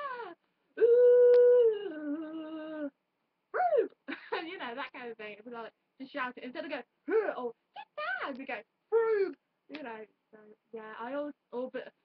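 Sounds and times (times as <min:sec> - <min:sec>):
woman wailing: 0:00.0 - 0:02.9.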